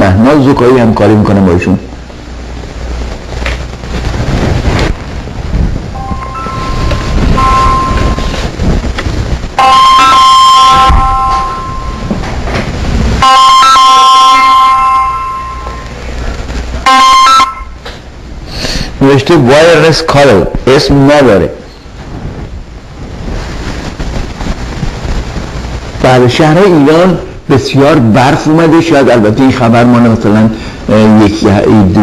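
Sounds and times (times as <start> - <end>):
low rumble: 1.9 - 13.2
electronic held tones chord: 5.9 - 8.6, 9.6 - 12.3, 13.2 - 16.0, 16.9 - 17.8.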